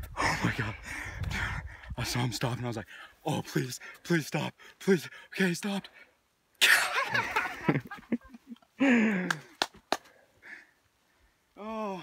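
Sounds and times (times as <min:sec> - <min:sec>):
man exclaiming and laughing: 0:01.9 - 0:05.8, 0:11.6 - 0:12.0.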